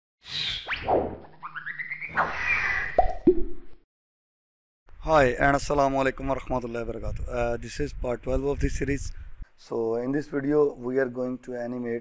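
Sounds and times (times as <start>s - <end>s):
cartoon swish: 0.3s - 3.2s.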